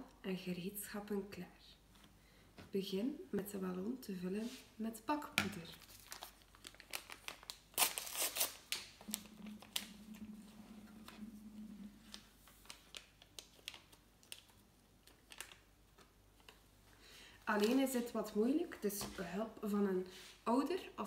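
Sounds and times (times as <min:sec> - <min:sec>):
paper sachet crinkling: 0:05.5 - 0:10.4, 0:11.9 - 0:16.6
paper tearing: 0:05.9 - 0:08.9
low steady hum: 0:08.9 - 0:21.0.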